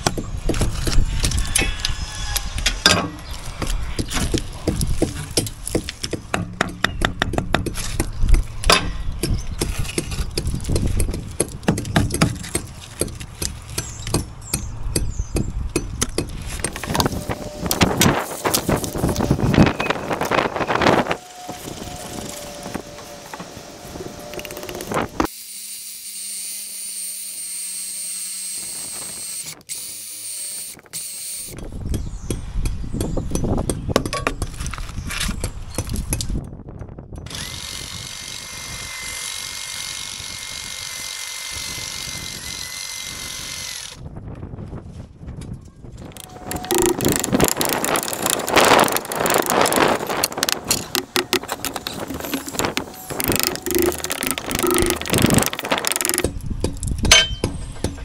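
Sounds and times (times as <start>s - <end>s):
hammer drill chiselling brick: 46.1s - 57.5s.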